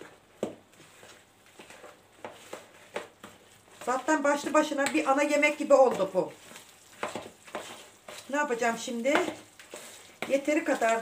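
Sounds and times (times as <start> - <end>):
hand squelching batter: 0.1 - 11.0.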